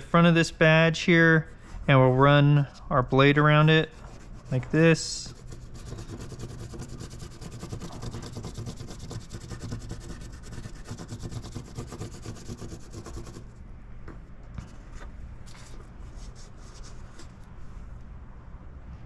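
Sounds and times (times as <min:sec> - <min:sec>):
low steady hum: 0:00.0 - 0:19.0
pencil scratching on paper: 0:03.6 - 0:13.5.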